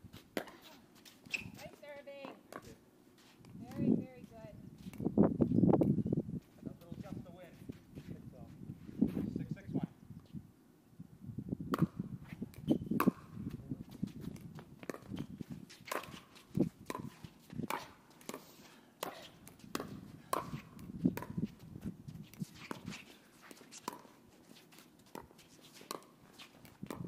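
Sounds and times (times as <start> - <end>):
ball bouncing: 11.7 - 13.4, 14.2 - 24.2, 25.0 - 27.0
shoes on hard court: 12.2 - 27.0
paddles hitting plastic ball: 14.2 - 21.6, 24.8 - 27.0.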